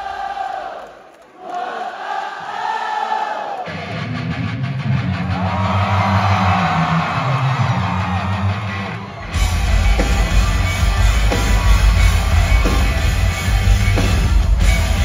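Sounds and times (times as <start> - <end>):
crowd singing along: 0.0 - 3.8
bass and guitar: 3.7 - 15.0
live band with drums: 9.3 - 15.0.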